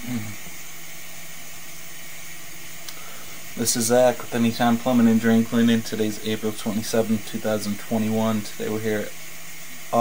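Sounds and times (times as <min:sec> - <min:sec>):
faint low hum: 0:00.0 - 0:10.0
steady hiss: 0:00.0 - 0:10.0
faint click: 0:02.8 - 0:03.0.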